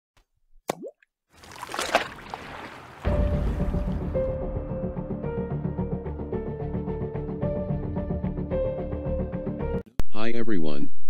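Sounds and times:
water drop plop: 0:00.6 - 0:04.1.

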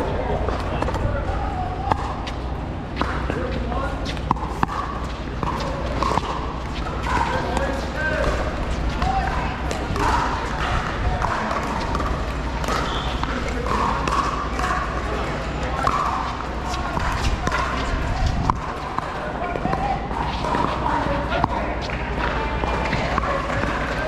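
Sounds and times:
steady low rumble: 0:00.0 - 0:14.4
indistinct voices: 0:00.0 - 0:24.0
paddles hitting balls: 0:00.2 - 0:24.0.

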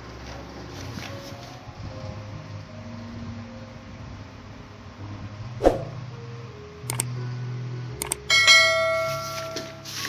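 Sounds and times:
mouse clicks: 0:06.9 - 0:07.1, 0:08.0 - 0:08.2
bright ringing bell chime: 0:08.3 - 0:09.6.

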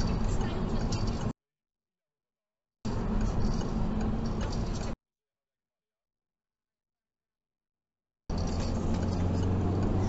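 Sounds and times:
car cabin road rumble: 0:00.0 - 0:01.4, 0:02.9 - 0:05.0, 0:08.3 - 0:10.0
turn signal ticking: 0:02.9 - 0:05.0, 0:08.4 - 0:10.0.

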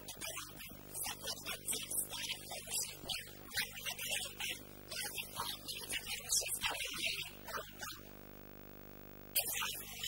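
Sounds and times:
person speaking over microphone: 0:00.0 - 0:08.0, 0:09.4 - 0:10.0
faint electrical hum: 0:00.0 - 0:10.0.

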